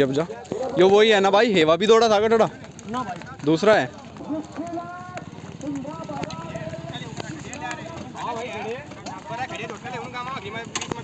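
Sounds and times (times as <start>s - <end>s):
men talking over one another: 0.0s - 11.0s.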